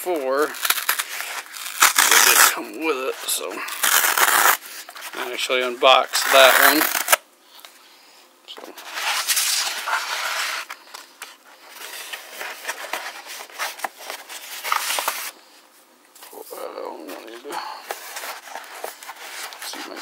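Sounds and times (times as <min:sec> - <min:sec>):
cardboard scraping and rustling: 0:00.0 - 0:07.2, 0:08.6 - 0:15.3, 0:16.2 - 0:20.0
cardboard tearing: 0:00.0 - 0:07.2, 0:11.7 - 0:15.3, 0:17.0 - 0:20.0.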